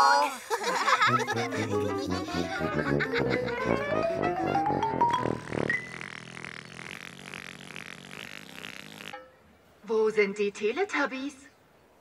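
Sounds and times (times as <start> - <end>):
rasping buzzing whir: 1.3 - 9.2.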